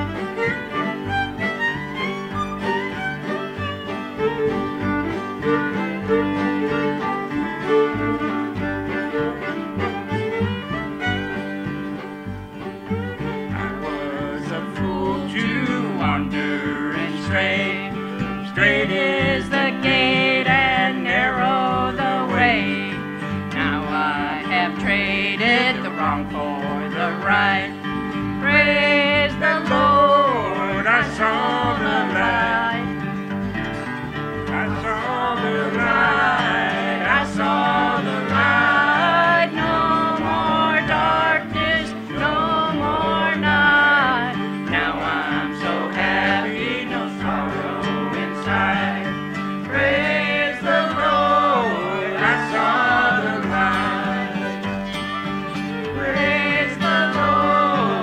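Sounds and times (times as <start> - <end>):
fiddles bowing melody: 0.0 - 58.0
plucked upright bass: 0.0 - 58.0
strummed acoustic guitars: 0.0 - 58.0.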